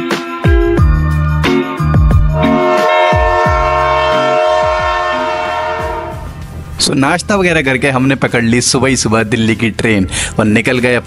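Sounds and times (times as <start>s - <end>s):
hip hop music with deep bass: 0.0s - 9.3s
train horn blast: 2.4s - 6.4s.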